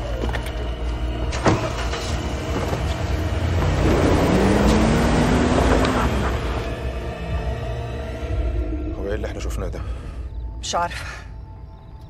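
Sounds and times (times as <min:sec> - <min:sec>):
car engine revving: 0:01.4 - 0:08.4.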